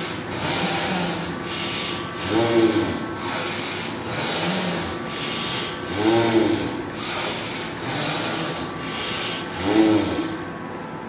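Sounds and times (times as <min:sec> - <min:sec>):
forceful nasal breathing: 0:00.0 - 0:10.5.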